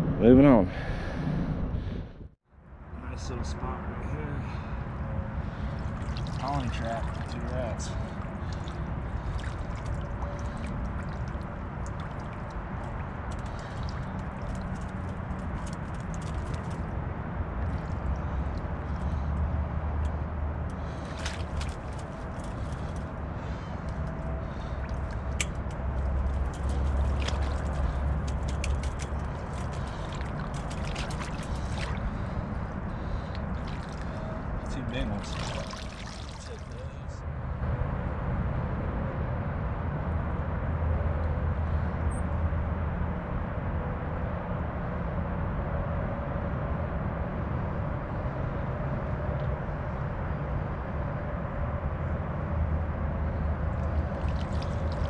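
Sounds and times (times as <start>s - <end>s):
low rumble: 0.0s - 3.0s
low steady rumble: 0.0s - 55.0s.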